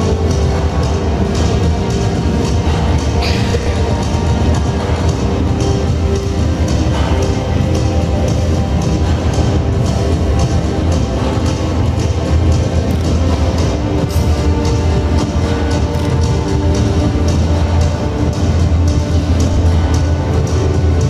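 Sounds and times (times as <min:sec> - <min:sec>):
music with heavy bass beat: 0:00.0 - 0:21.0.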